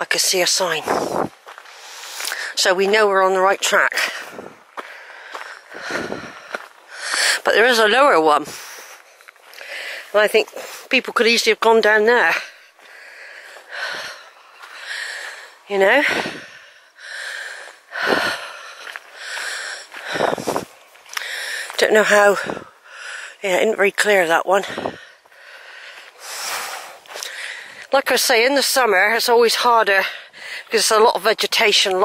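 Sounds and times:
footsteps on gravel: 0:00.0 - 0:22.8, 0:23.8 - 0:28.8
person breathing: 0:00.8 - 0:02.6, 0:04.0 - 0:07.5, 0:08.5 - 0:10.9, 0:12.4 - 0:23.4, 0:24.6 - 0:27.9, 0:30.1 - 0:30.7.

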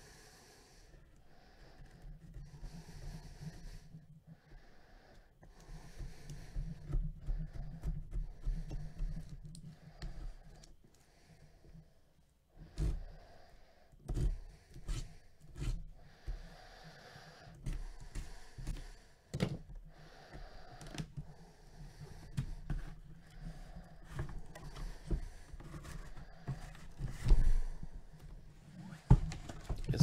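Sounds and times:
cardboard scraping and rustling: 0:24.0 - 0:30.0.

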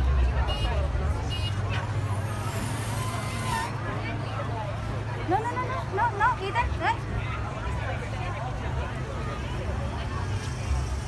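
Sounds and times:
crowd chatter: 0:00.0 - 0:11.0
idling vehicle engine hum: 0:00.0 - 0:11.0.

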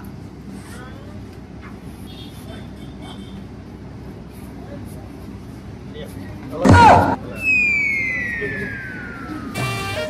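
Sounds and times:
low background hum and rumble: 0:00.0 - 0:09.8.

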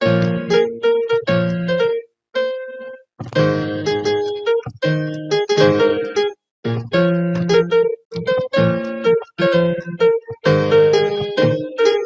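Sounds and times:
electronic keyboard notes and chords: 0:00.0 - 0:12.0.

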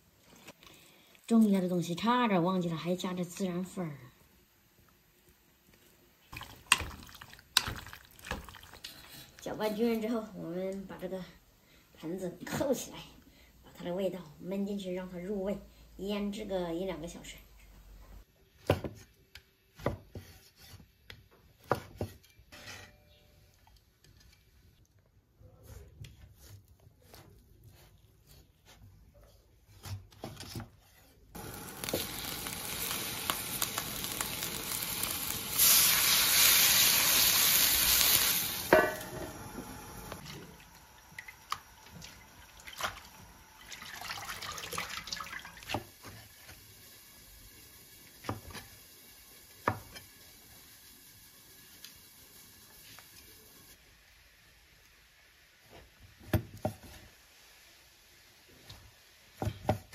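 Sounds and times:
wok hissing: 0:31.3 - 0:43.8, 0:45.8 - 0:56.0.

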